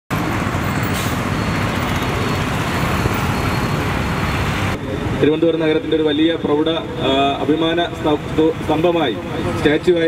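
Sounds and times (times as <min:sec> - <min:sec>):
road traffic passing: 0:00.1 - 0:10.0.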